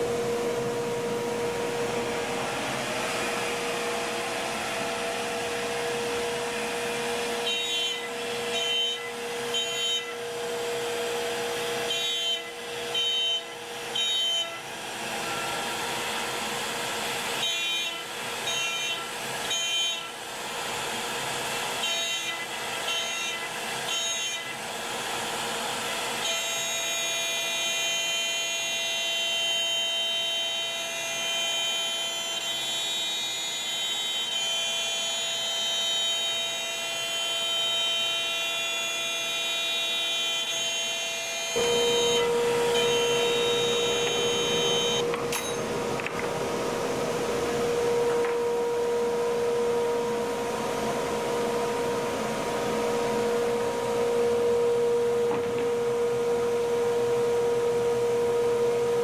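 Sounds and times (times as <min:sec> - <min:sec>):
cnc router whine: 0:00.0 - 0:59.0.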